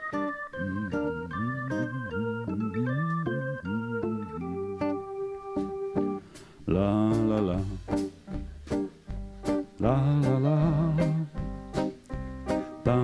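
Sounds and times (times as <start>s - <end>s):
electronic organ melody: 0.0s - 6.3s.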